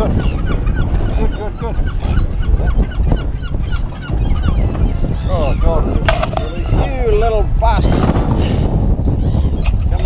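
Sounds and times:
seabirds squawking: 0.0s - 10.0s.

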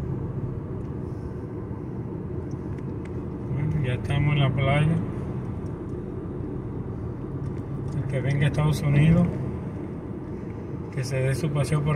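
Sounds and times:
car driving interior rumble: 0.0s - 11.9s.

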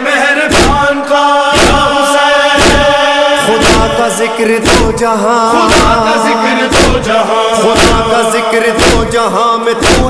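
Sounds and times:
person singing devotional song: 0.0s - 9.9s
heavy beat: 2.6s - 9.2s.

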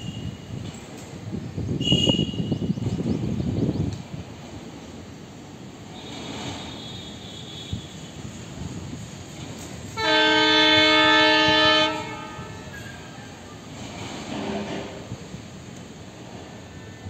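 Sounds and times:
faint train rumble: 0.0s - 17.0s
locomotive horn blast: 1.8s - 2.7s, 5.9s - 8.3s, 10.0s - 13.1s, 14.1s - 15.1s.

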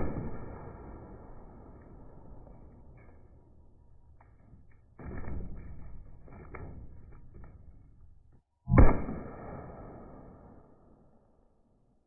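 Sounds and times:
slowed gunshot booms: 0.0s - 2.9s, 8.7s - 11.3s.

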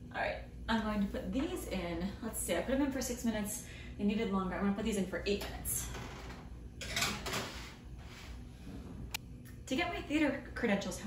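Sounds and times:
baking sheet scraping oven rack: 6.8s - 9.0s.

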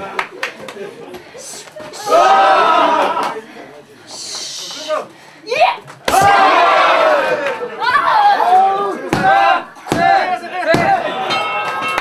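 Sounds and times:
voices shouting: 1.9s - 3.4s, 6.1s - 11.4s.

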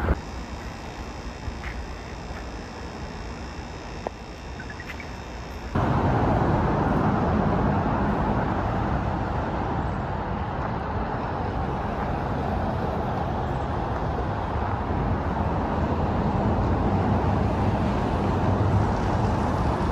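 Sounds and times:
road traffic noise: 0.0s - 19.9s.

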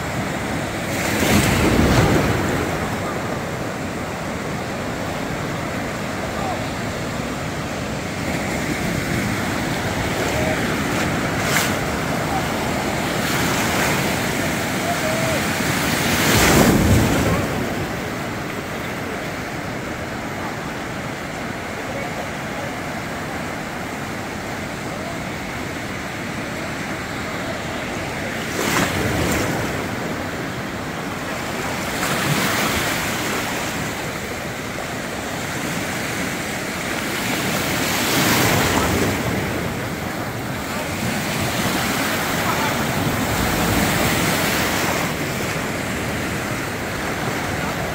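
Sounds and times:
surf breaking on a beach: 0.0s - 47.9s.

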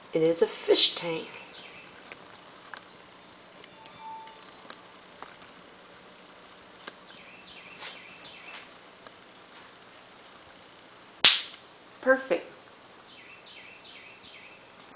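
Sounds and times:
faint falling chirps: 3.6s - 4.8s.

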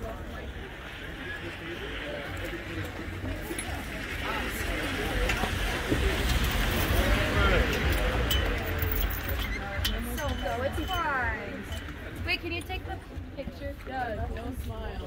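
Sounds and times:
indistinct voices talking: 0.0s - 15.0s
harness chains clinking: 2.4s - 12.9s.

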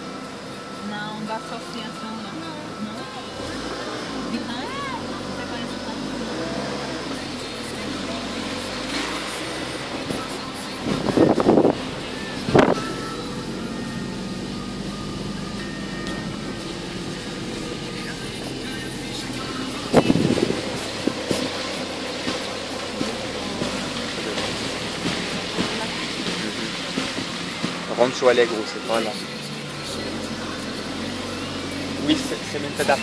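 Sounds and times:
car engine and road noise: 0.0s - 33.0s.

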